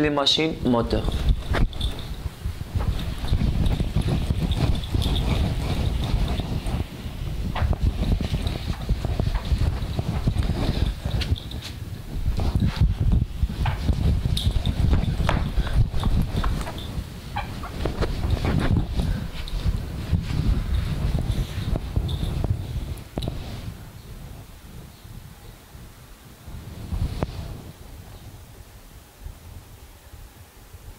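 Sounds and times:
steady low rumble: 0.0s - 29.7s.

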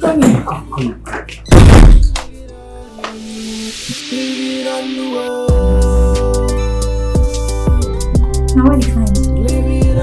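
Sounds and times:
background music: 0.0s - 10.0s
loud deep thump: 1.5s - 2.2s.

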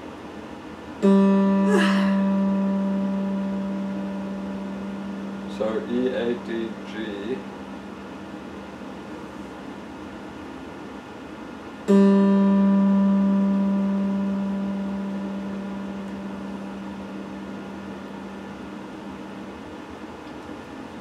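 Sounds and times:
electric guitar string ringing: 1.0s - 9.2s, 11.8s - 20.0s.

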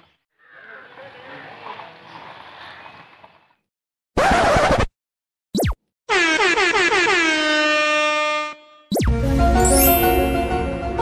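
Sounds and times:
air horn blaring: 6.1s - 8.9s.

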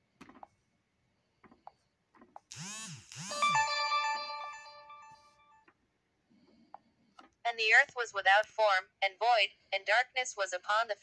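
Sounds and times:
electronic chime jingle: 3.2s - 5.6s.

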